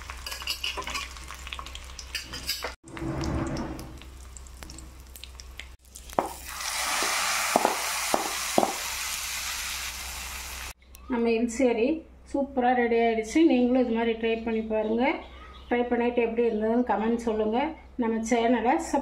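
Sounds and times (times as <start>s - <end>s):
spices sizzling in hot oil: 0.0s - 2.8s, 3.8s - 10.8s.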